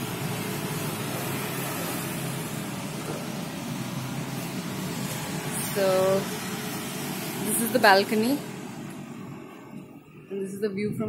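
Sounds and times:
outdoor hiss: 0:00.0 - 0:10.0.

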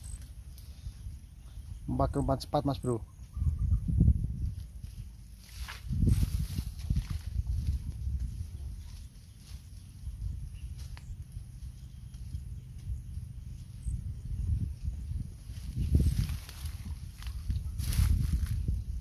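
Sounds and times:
footsteps in undergrowth: 0:04.4 - 0:13.8, 0:14.8 - 0:19.0
leaves and stems rustling: 0:04.4 - 0:19.0.

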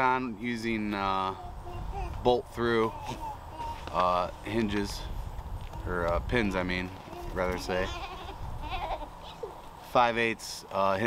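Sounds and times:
goat bleating: 0:06.9 - 0:09.5.

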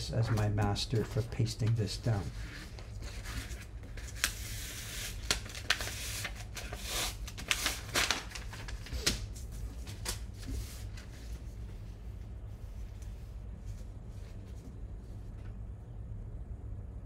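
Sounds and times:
paper rustling and crinkling: 0:00.0 - 0:11.8
low steady hum: 0:00.0 - 0:17.0.

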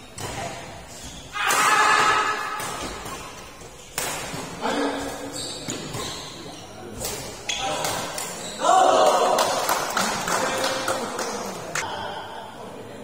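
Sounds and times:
people shouting: 0:01.3 - 0:02.8, 0:08.6 - 0:09.4
rackets hitting shuttlecock: 0:01.4 - 0:04.6.

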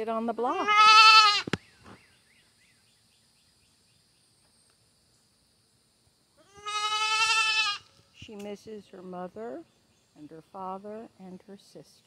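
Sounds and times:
goat kid bleating: 0:00.4 - 0:01.5, 0:06.4 - 0:07.9.

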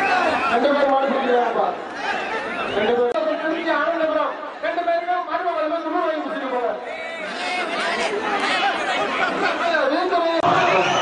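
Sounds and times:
crowd shouting and chattering: 0:00.0 - 0:11.0.

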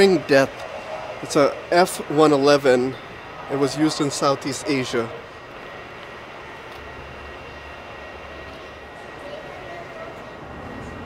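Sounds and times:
hum and hiss of hall: 0:00.0 - 0:11.0.

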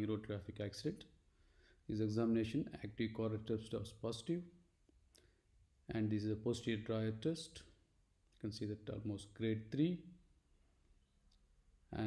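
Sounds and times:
man speaking: 0:00.0 - 0:01.2, 0:01.9 - 0:04.6, 0:05.8 - 0:10.2.

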